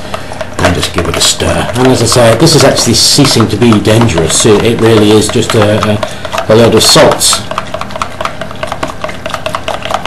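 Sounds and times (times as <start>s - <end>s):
liquid being stirred: 0.0s - 10.0s
stirrer clicking against jug: 0.0s - 10.0s.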